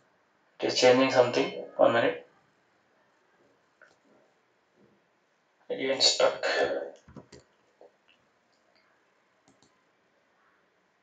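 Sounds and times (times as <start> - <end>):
computer mouse clicks: 7.0 - 7.6, 9.4 - 9.8.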